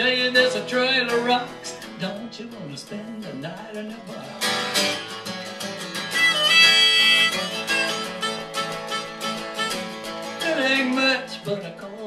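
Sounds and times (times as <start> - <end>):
acoustic guitar strumming: 0.0 - 12.0
held high melody line: 6.1 - 9.8.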